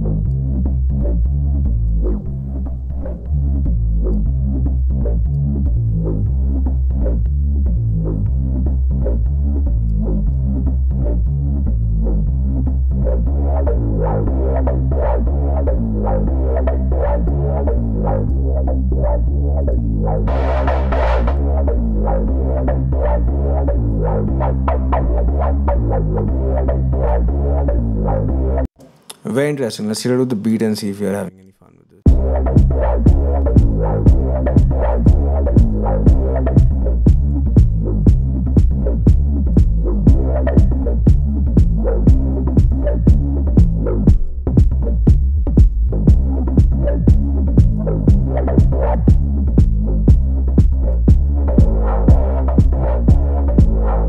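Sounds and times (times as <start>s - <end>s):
looping electronic bass line: 0.0s - 28.7s, 32.0s - 54.0s.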